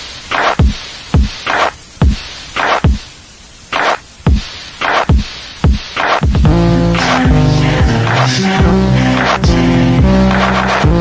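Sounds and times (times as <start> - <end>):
lo-fi electronic beat: 0.0 - 3.1, 3.7 - 11.0.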